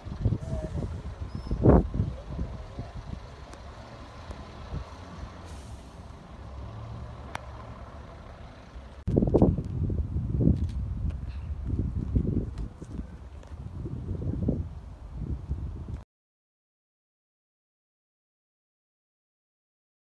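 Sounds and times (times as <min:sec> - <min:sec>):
bus engines rumbling: 0:00.0 - 0:16.0.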